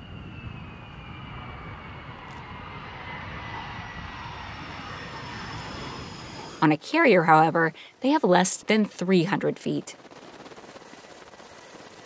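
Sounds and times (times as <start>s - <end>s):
fighter jet engine whine: 0.0s - 12.0s.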